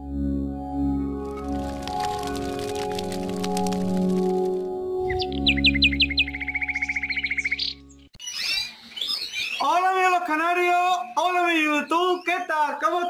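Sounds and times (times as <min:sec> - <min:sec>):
music with birdlike chirps: 0:00.0 - 0:10.0
canaries chirping and calling: 0:05.1 - 0:13.0.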